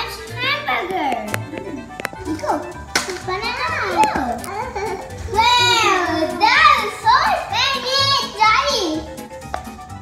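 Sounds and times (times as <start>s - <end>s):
children chattering: 0.0s - 8.8s.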